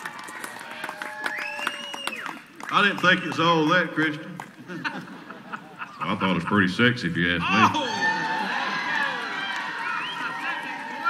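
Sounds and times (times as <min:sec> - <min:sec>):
crowd cheering and calling out: 0:07.4 - 0:11.0.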